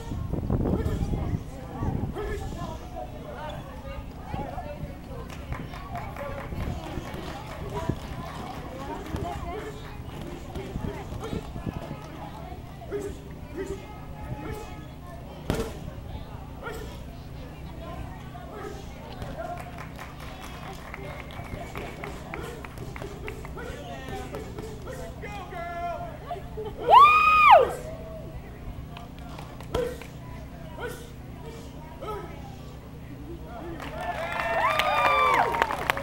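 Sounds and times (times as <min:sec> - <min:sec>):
people talking nearby: 0:00.0 - 0:36.0
punches and kicks on pads: 0:15.5 - 0:15.8.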